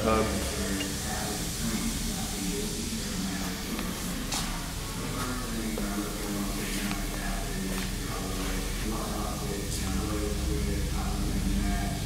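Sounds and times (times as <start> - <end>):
steady hiss and low hum: 0.0 - 12.0.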